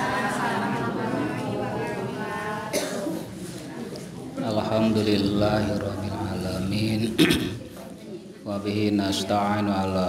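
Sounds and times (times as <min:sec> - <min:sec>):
man coughing into microphone: 0:02.7 - 0:03.3, 0:07.1 - 0:07.7.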